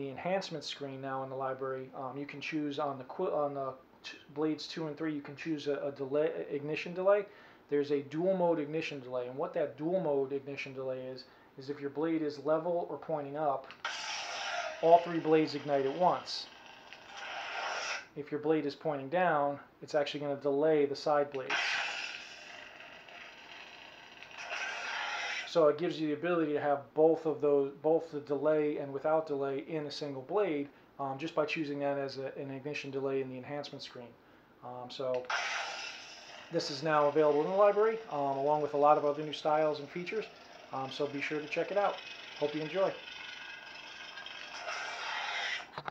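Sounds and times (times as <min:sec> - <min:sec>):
crackling lightsaber hum: 0:13.8 - 0:18.1, 0:21.4 - 0:25.6, 0:35.2 - 0:45.9
lightsaber hissing surge: 0:13.8 - 0:18.1, 0:21.5 - 0:25.5, 0:35.2 - 0:38.4, 0:44.5 - 0:45.7.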